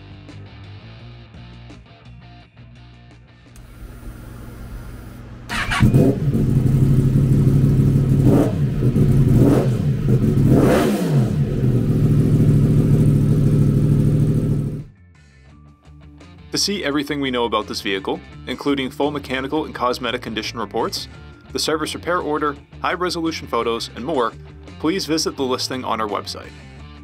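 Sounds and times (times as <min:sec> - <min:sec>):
motorcycle engine revving and idling: 0:03.6 - 0:14.9.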